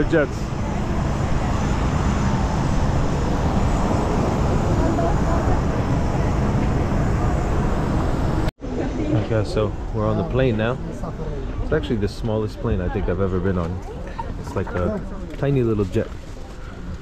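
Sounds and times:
aircraft engine roar: 0.0 - 17.0
high engine whine: 0.0 - 17.0.

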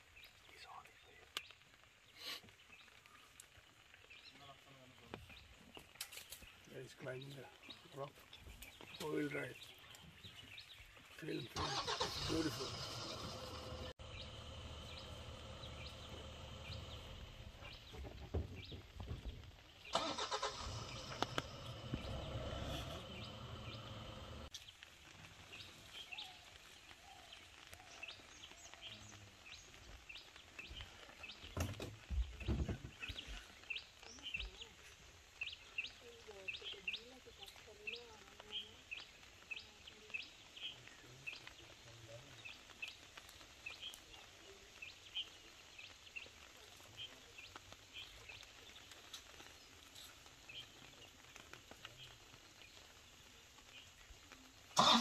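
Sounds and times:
bird chirping: 0.0 - 24.8
low rumble: 12.3 - 19.5, 20.8 - 24.5.

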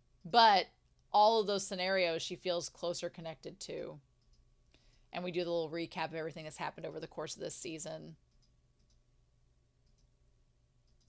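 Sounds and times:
woman's voice: 0.3 - 4.0, 5.2 - 8.2.

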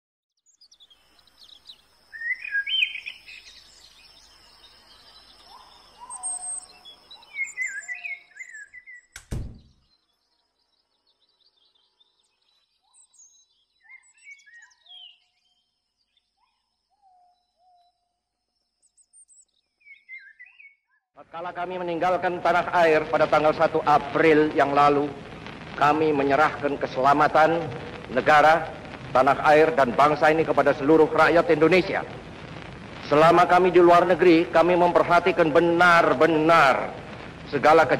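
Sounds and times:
birds chirping: 0.5 - 36.8
steady background hiss: 0.7 - 8.5, 21.2 - 37.9
loud thump: 9.2 - 9.9.

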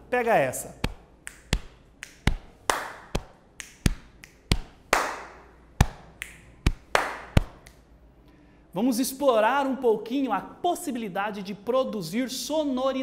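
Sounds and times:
person speaking: 0.0 - 2.4
body percussion hand strikes: 0.8 - 7.8.

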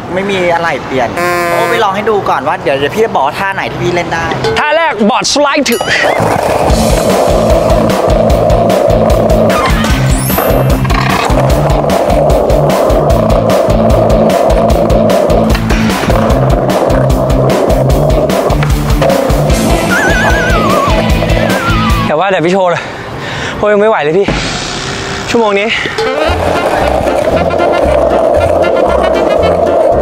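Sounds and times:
skateboard rolling on pavement: 5.8 - 22.1, 25.5 - 30.0
skateboard sliding on metal rail: 6.1 - 21.6, 25.9 - 30.0.

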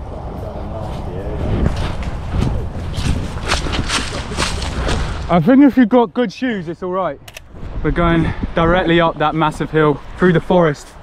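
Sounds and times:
steady low rumble: 0.0 - 5.6
footsteps crunching through leaves: 1.7 - 5.3.

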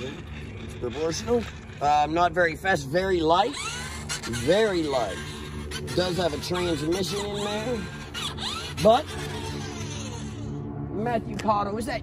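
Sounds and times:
electric motor whirring: 0.0 - 11.4.

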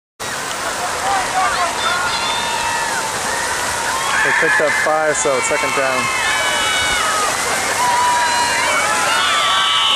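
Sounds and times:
heavy rain: 0.2 - 9.9.

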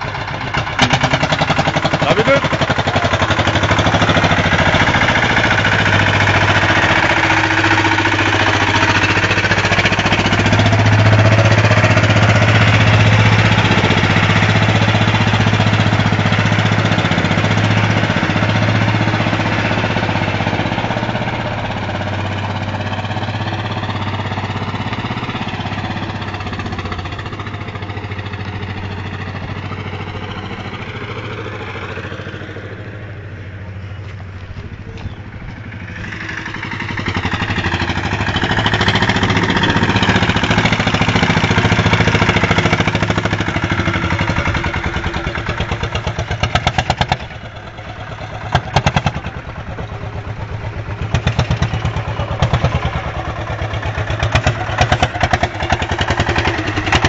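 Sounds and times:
diesel engine throbbing: 0.0 - 57.0.

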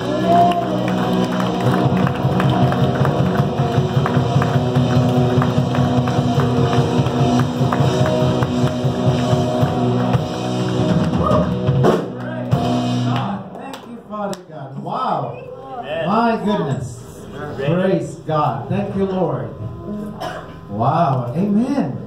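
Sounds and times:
electric guitar: 0.0 - 13.4
drum kit steady beat: 0.0 - 13.5
keyboard: 0.0 - 13.7
bass: 0.0 - 15.5.

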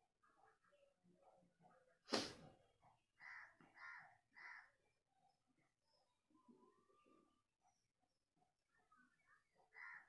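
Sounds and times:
faint bird caws: 3.2 - 5.0, 9.6 - 10.0.

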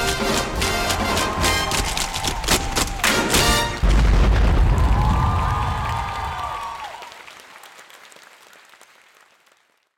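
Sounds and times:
crowd applauding: 0.1 - 9.9.

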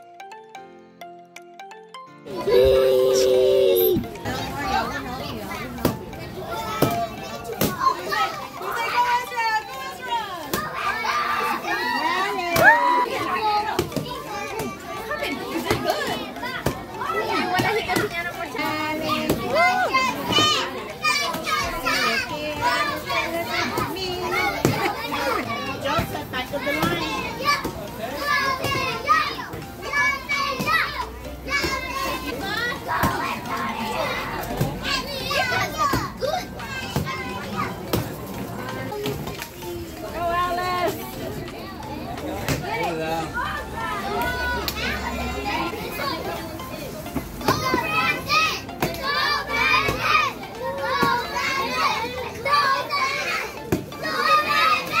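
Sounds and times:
adult voices: 2.3 - 10.3
children shouting: 2.3 - 26.0, 26.6 - 37.8, 42.4 - 46.5, 47.4 - 55.0.

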